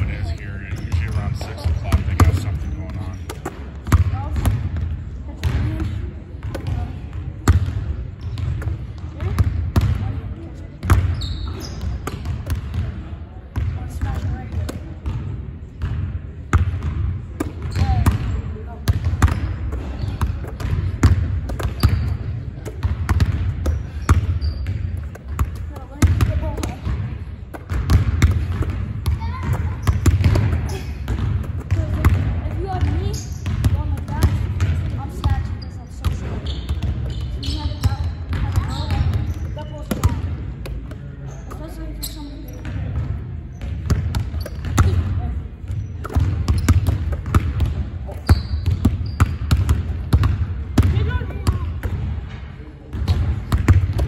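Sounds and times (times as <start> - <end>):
basketballs bouncing on hardwood: 0.0 - 13.0, 13.6 - 40.9, 42.6 - 52.3, 52.9 - 54.0
voices in background: 0.0 - 54.0.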